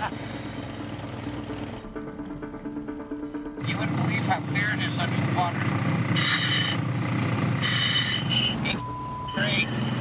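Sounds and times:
engine and pump running: 0.0 - 10.0.

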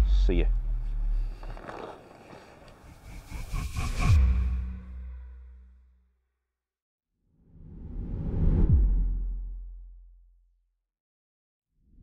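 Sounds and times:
outdoor background noise: 0.0 - 4.1.

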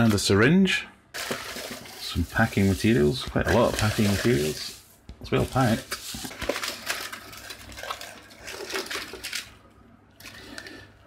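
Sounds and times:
crinkle paper rustling: 1.2 - 10.9.

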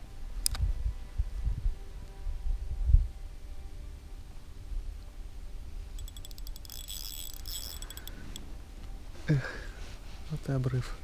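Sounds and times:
fishing reel clicking: 6.0 - 8.4.

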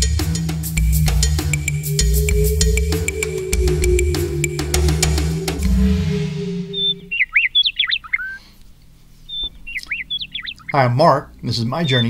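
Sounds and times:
bird whistling chirps: 0.7 - 8.4, 9.3 - 10.8.

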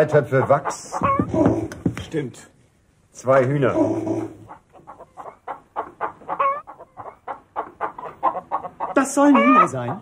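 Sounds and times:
hen clucking: 0.0 - 2.0, 3.5 - 10.0.

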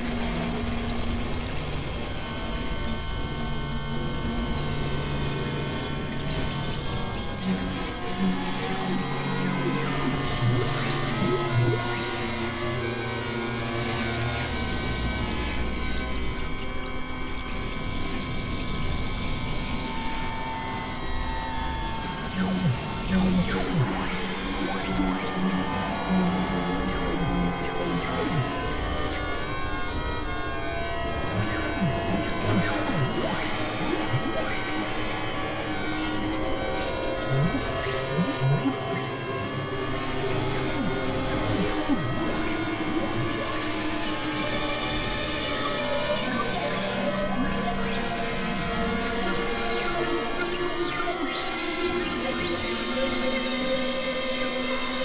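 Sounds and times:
electronic drone music: 7.0 - 14.0, 20.6 - 54.6.

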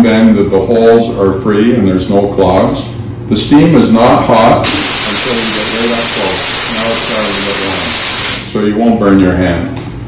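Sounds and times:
steam wand hissing: 4.7 - 8.5.

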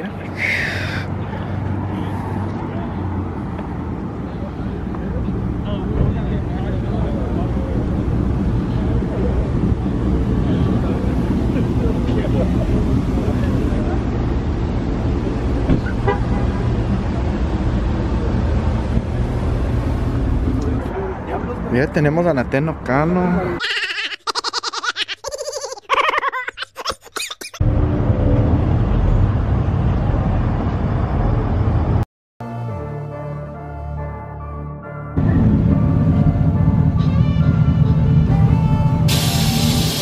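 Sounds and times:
truck engines running: 0.0 - 25.7, 27.5 - 32.0, 35.2 - 40.0.

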